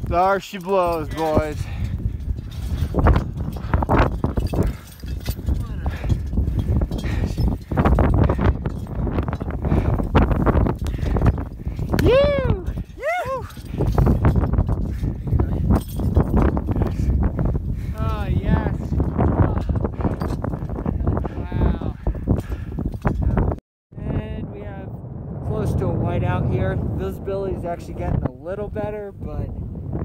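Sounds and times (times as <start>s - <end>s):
wind buffeting microphone: 0.0s - 30.0s
person whooping: 12.0s - 13.6s.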